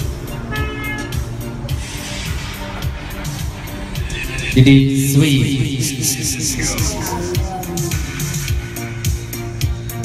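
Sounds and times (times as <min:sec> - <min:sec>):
music over loudspeakers: 0:00.0 - 0:10.0.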